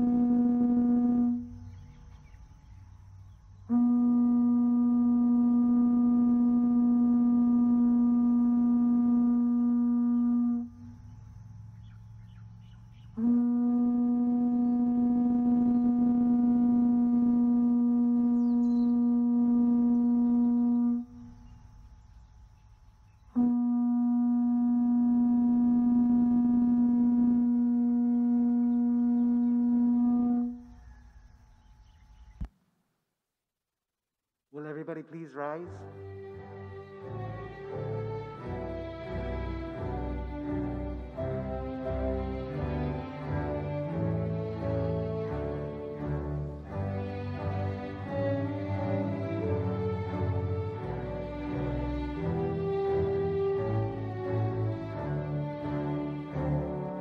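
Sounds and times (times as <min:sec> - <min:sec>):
conch shell trumpet blasts: 0:00.0 - 0:01.7, 0:03.7 - 0:10.9, 0:13.2 - 0:21.3, 0:23.4 - 0:30.7.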